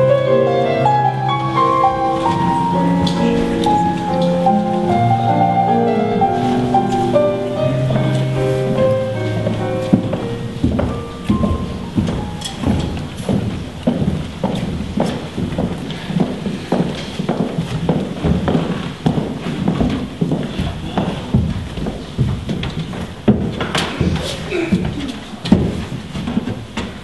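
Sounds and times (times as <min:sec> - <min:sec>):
piano music: 0:00.0 - 0:24.2
footsteps on wooden stage: 0:00.0 - 0:27.0.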